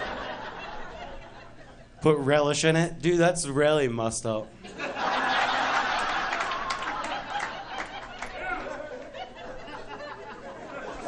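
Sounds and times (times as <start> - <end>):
audience laughing and chattering: 0.0 - 2.0, 4.6 - 11.0.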